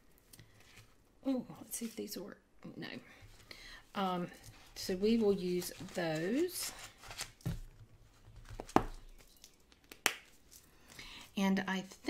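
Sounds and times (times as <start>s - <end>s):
sticker sheets crinkling: 4.3s - 11.2s.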